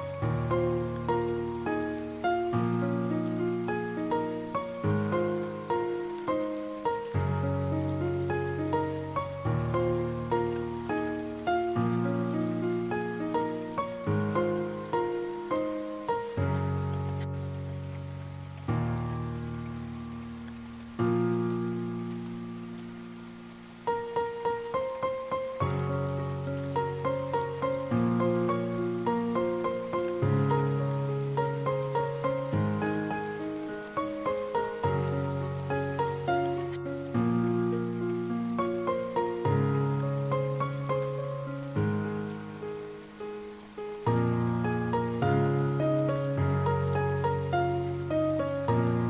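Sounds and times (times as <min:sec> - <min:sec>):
piano playing slow chords: 0:00.0 - 0:49.0
rain: 0:00.0 - 0:49.0.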